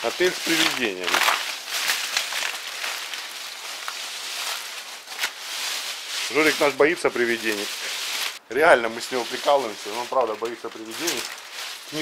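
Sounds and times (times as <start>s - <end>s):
dry palm fronds rustling: 0.0s - 12.0s.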